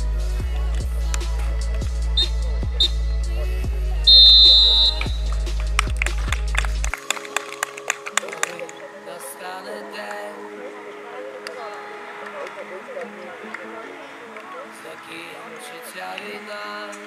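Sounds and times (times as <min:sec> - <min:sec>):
background music with heavy beat: 0:00.0 - 0:17.0
players' voices: 0:00.0 - 0:17.0
referee's whistle blasts: 0:04.1 - 0:05.3.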